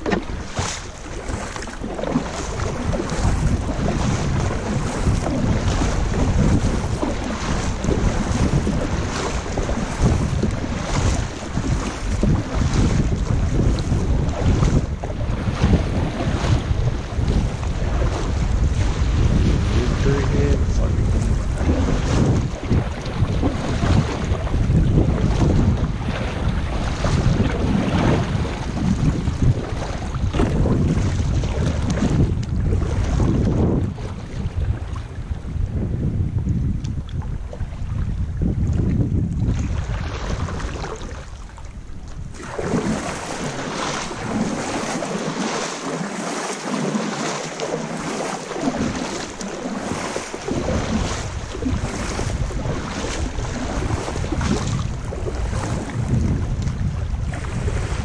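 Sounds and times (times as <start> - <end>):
paddle water splashing: 0.0 - 58.0
wind buffeting microphone: 0.0 - 58.0.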